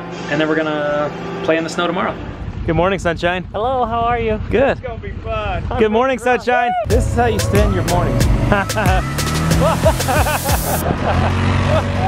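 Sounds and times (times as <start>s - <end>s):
low engine drone: 0.0s - 11.8s
man laughing: 5.6s - 12.0s.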